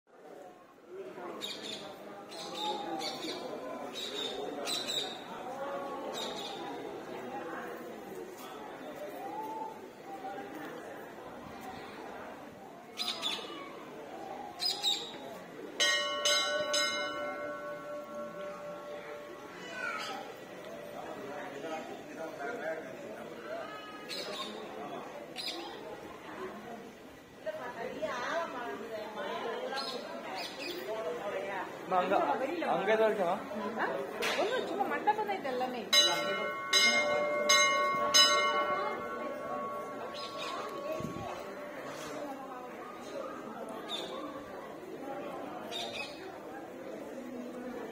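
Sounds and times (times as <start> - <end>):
temple bell ringing: 15.8 - 22.0, 35.0 - 43.2
high gliding calls: 36.0 - 42.4.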